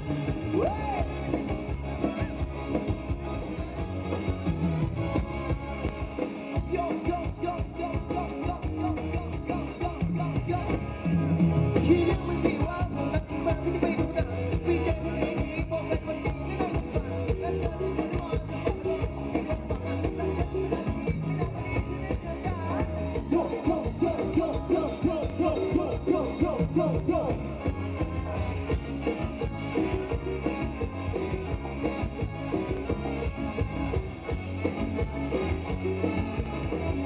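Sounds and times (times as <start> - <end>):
live band playing dance music: 0.0 - 37.0
steady drum beat: 0.0 - 37.0
sustained bass notes: 0.0 - 37.0.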